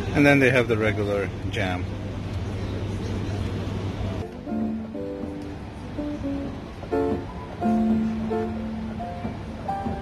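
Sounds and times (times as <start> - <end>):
room noise hiss: 0.0 - 10.0
ventilation hum: 0.0 - 10.0.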